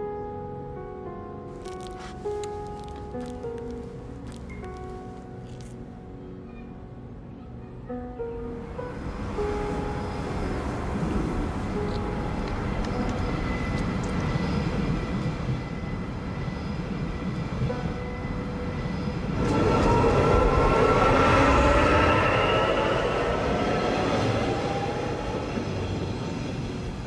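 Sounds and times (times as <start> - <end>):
train low rumble: 8.6 - 27.0
train whining tones: 8.8 - 27.0.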